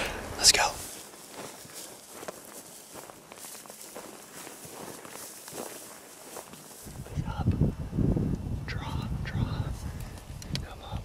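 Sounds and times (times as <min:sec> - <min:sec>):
footsteps in dry grass: 0:00.0 - 0:07.4.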